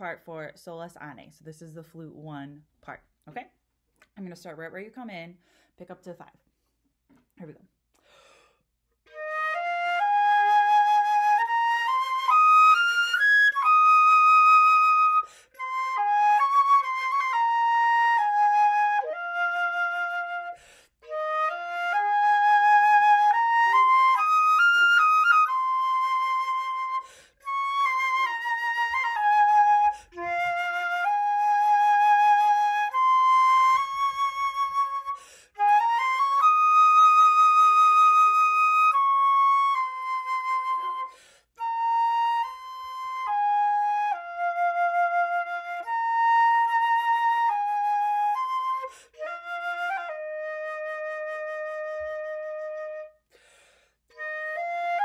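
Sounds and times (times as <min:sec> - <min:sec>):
solo flute melody: 0:09.0 - 0:53.3, 0:54.1 - 0:55.0.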